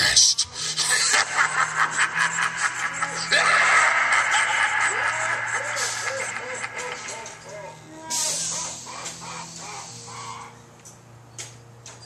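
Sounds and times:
low steady hum: 0.0s - 12.0s
harsh bird-like calls: 5.1s - 10.8s.

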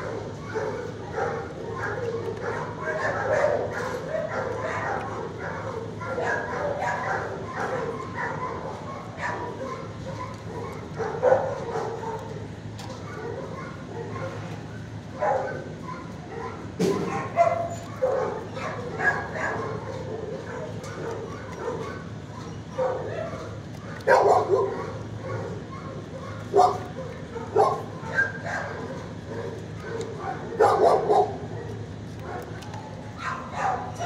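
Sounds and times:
background dogs: 0.0s - 34.0s
dogs barking and yipping: 0.0s - 34.0s.

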